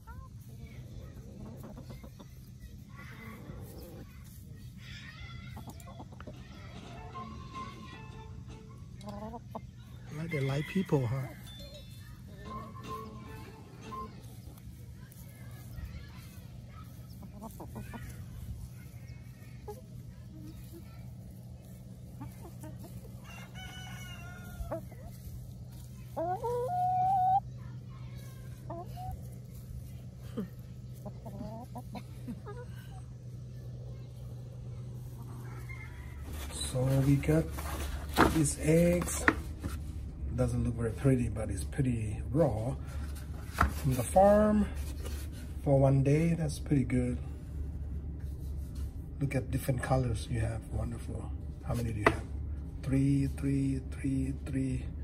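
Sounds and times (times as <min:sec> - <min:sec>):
chickens clucking: 0:00.0 - 0:53.5
low steady rumble: 0:00.0 - 0:55.0
rooster crowing: 0:10.1 - 0:11.8, 0:23.2 - 0:24.9, 0:35.3 - 0:36.6
faint drawn-out chicken call: 0:10.1 - 0:12.6, 0:23.2 - 0:25.1, 0:35.0 - 0:36.8
steady low hum: 0:11.1 - 0:55.0.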